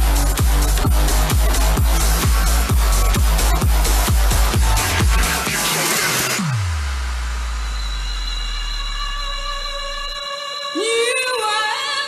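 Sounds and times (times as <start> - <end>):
deep sub-bass boom: 0.0 - 5.5.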